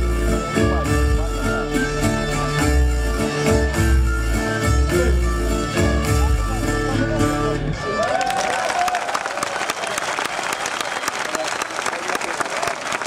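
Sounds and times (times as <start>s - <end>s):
audience applauding and cheering: 7.8s - 13.0s.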